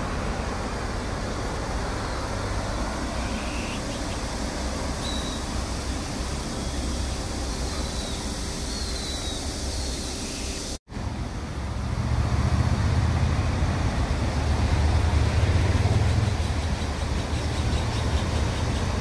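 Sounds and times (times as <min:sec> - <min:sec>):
passing cars with low rumble: 0:10.9 - 0:19.0.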